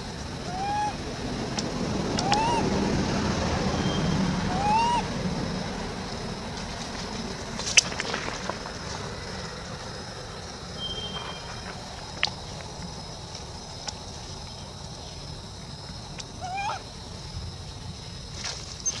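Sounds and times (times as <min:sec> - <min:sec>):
steady low rumble: 0:00.0 - 0:19.0
infant monkey coo calls: 0:00.4 - 0:01.0, 0:02.2 - 0:02.7, 0:03.8 - 0:05.1, 0:16.4 - 0:16.9.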